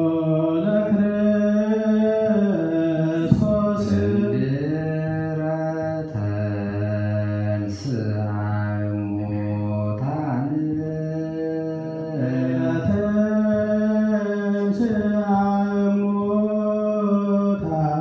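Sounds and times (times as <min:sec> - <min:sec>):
men chanting a hymn: 0:00.0 - 0:18.0.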